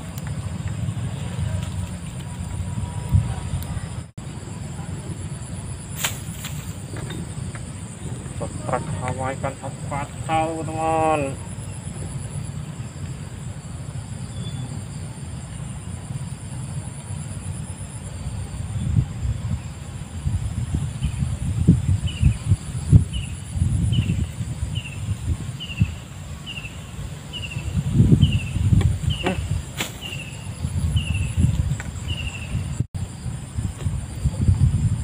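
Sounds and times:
wind rumbling on microphone: 0.0s - 35.0s
high-pitched insect drone: 2.8s - 35.0s.

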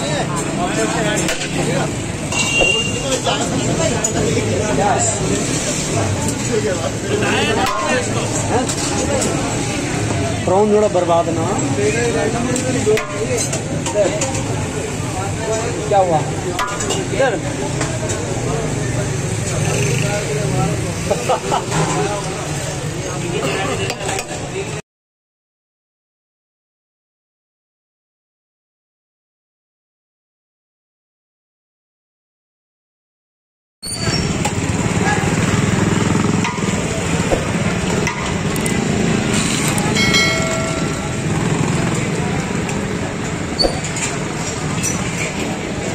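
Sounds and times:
crowd voices: 0.0s - 24.8s, 33.8s - 45.9s
motorcycle and car engines: 0.0s - 24.8s, 33.8s - 45.9s.

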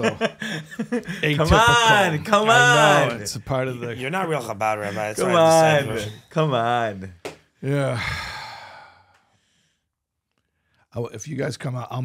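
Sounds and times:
long breathy sigh: 7.7s - 9.6s.

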